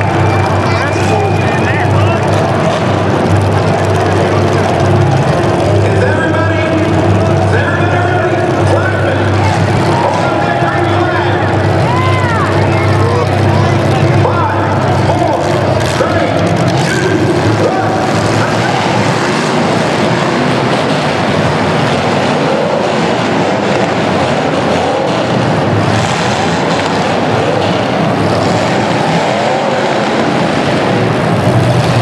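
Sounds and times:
car engines revving hard: 0:00.0 - 0:32.0.

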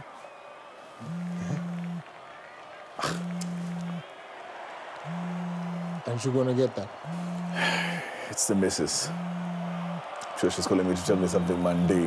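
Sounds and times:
phone vibrating buzz: 0:01.0 - 0:02.0, 0:03.0 - 0:04.1, 0:05.1 - 0:06.1, 0:07.0 - 0:08.0, 0:09.1 - 0:10.2.

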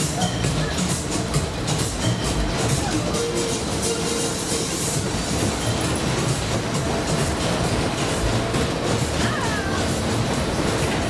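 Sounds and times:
fairground music: 0:00.0 - 0:11.0
ride wheels rumbling on track: 0:00.0 - 0:11.0.

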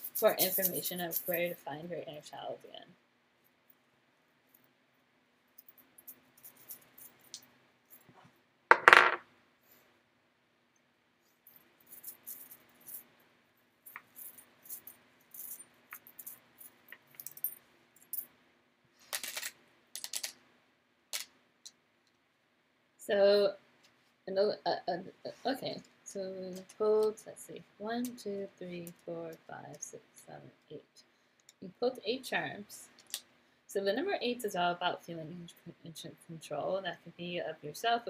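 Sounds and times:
metal charms clinking: 0:00.0 - 0:01.6, 0:11.8 - 0:13.0, 0:13.9 - 0:18.2.

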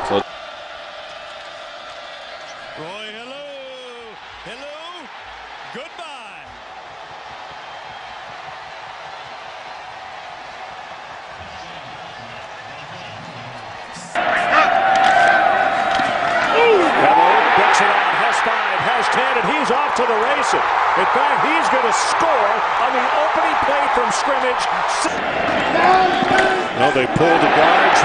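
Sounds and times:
stadium crowd noise: 0:00.0 - 0:28.0
announcer speaking: 0:02.8 - 0:05.1, 0:05.7 - 0:06.5, 0:16.6 - 0:25.2, 0:25.8 - 0:28.0
voices: 0:11.4 - 0:28.0.

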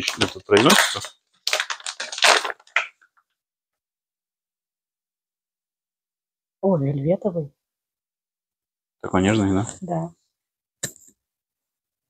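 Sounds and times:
plastic bag rustling and crinkling: 0:00.0 - 0:03.0.

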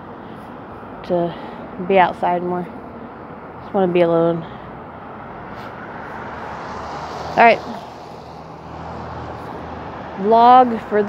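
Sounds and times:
passing car rumble: 0:04.3 - 0:11.0.

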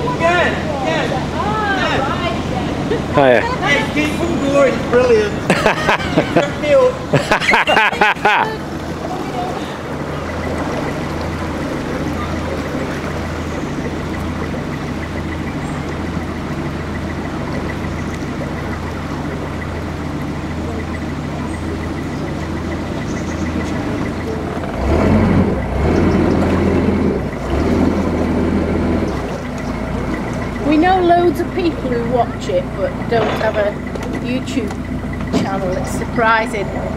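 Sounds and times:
boat diesel engine running: 0:00.0 - 0:36.9.

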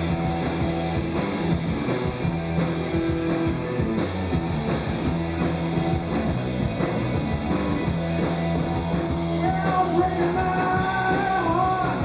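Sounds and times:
bass guitar: 0:00.0 - 0:12.0
drum kit hits: 0:00.0 - 0:12.0
guitar: 0:00.0 - 0:12.0.

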